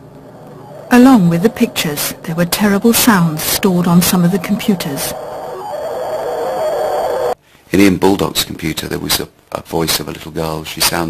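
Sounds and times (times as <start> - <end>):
noisy hum with wavering tone: 0.0 - 7.4
thin high whine: 0.0 - 7.4.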